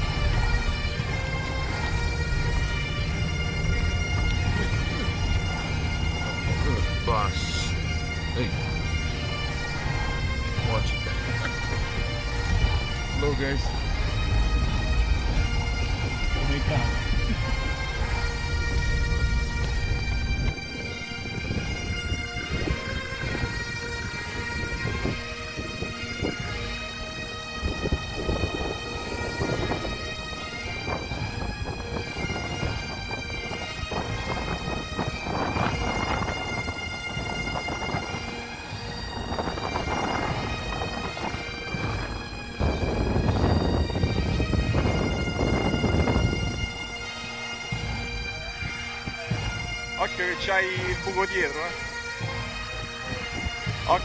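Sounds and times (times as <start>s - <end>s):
low rumbling noise: 0.0s - 50.5s
bagpipe music: 0.0s - 54.0s.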